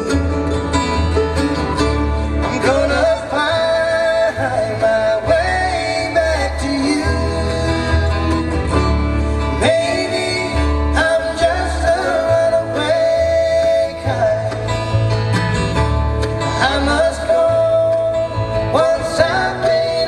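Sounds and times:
bluegrass band playing: 0.0 - 20.0.

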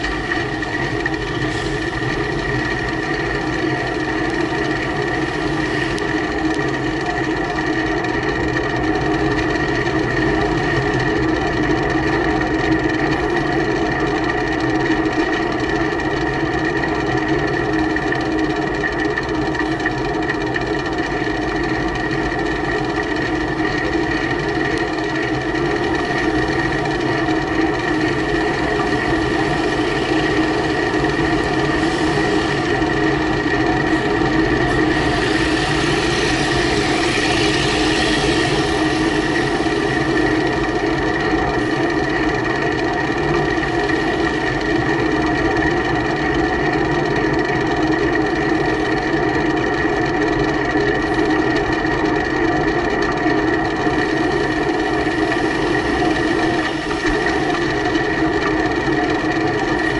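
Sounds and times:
constant steady hum: 0.0 - 59.9.

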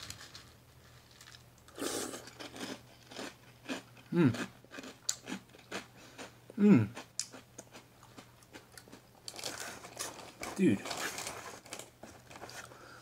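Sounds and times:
person chewing crunchy cereal: 0.0 - 12.9.

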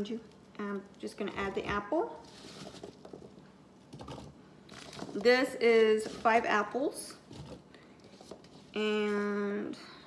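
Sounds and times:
hands handling apple pieces: 0.2 - 6.6.

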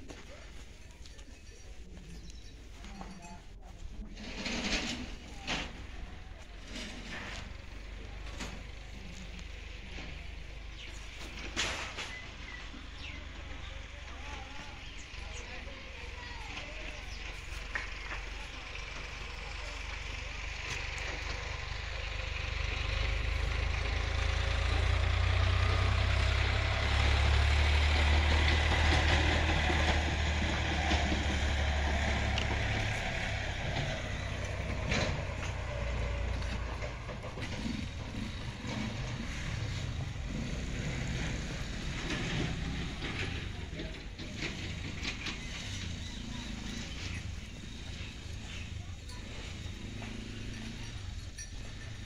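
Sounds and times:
low engine rumble: 0.0 - 52.0.

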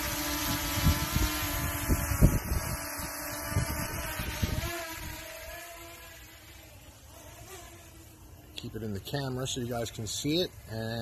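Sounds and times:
drone propellers whining: 0.0 - 7.1
wind buffeting microphone: 0.4 - 5.3.

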